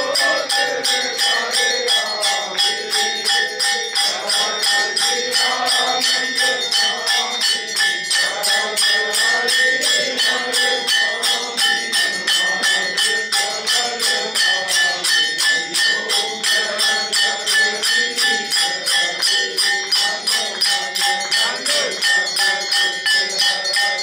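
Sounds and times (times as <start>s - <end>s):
group singing: 0.0s - 24.0s
hand cymbals: 0.0s - 24.0s
hand claps: 17.5s - 22.2s.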